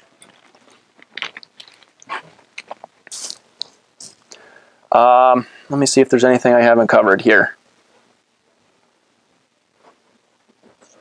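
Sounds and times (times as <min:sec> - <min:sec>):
plastic water bottle crinkling: 0:00.0 - 0:03.8.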